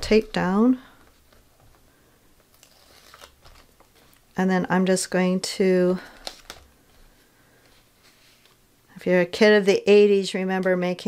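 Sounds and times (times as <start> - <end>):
faint handling of paper: 2.4 - 4.3, 6.0 - 8.6.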